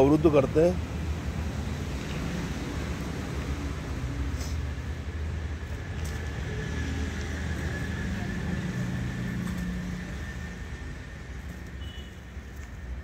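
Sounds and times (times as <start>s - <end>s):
vehicle engine hum: 0.0s - 13.0s.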